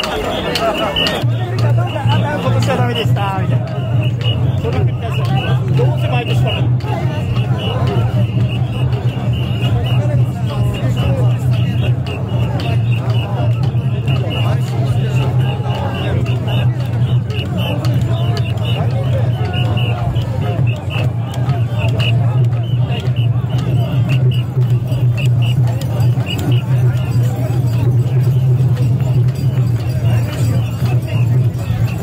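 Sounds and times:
crowd babble: 0:00.0 - 0:32.0.

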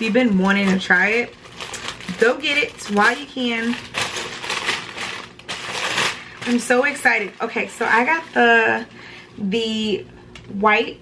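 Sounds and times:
packaging and fabric rustling: 0:00.0 - 0:08.9.

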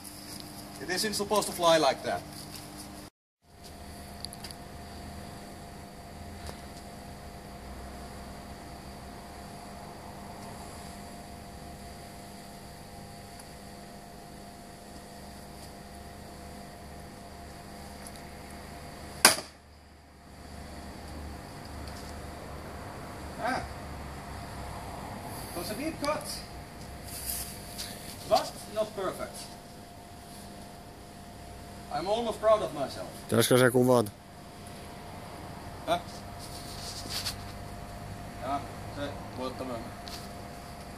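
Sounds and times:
steady background hum: 0:00.0 - 0:40.9
sword chopping into pole: 0:19.2 - 0:19.6.

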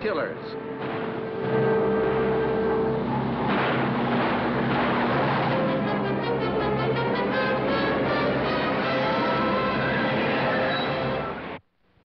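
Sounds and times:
tyre and road noise: 0:00.5 - 0:11.6
car engine running hard: 0:00.6 - 0:11.6.

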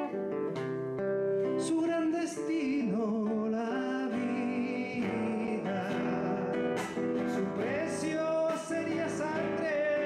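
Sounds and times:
acoustic guitar strumming: 0:00.0 - 0:10.0
man singing: 0:01.4 - 0:10.0.

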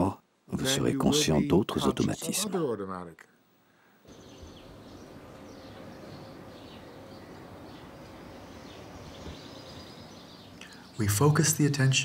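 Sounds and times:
steady background noise: 0:00.0 - 0:12.0
small birds chirping: 0:04.0 - 0:12.0.

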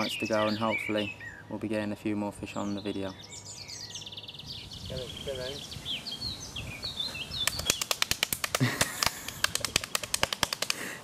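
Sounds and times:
small bird chirps: 0:00.0 - 0:08.2
hands slapping bare belly: 0:07.4 - 0:11.0.

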